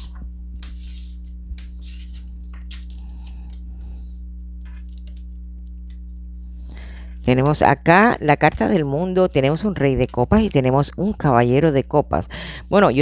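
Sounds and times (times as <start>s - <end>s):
cards rustling and sliding: 0.0s - 5.4s
steady low hum: 0.0s - 13.0s.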